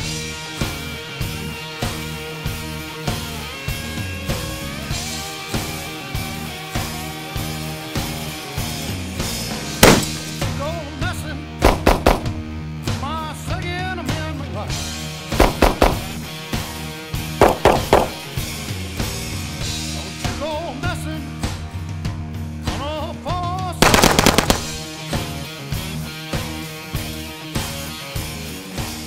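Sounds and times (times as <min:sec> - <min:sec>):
rock background music: 0:00.0 - 0:29.0
gunshots: 0:09.8 - 0:10.4, 0:11.6 - 0:12.5, 0:15.4 - 0:16.3, 0:17.4 - 0:18.4, 0:23.8 - 0:24.9.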